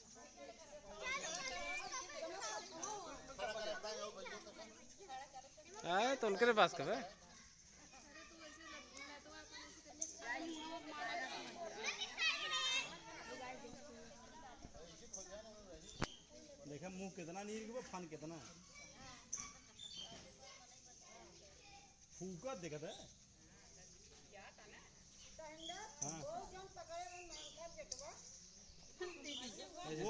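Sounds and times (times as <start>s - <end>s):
overlapping voices chattering: 0.0s - 16.6s.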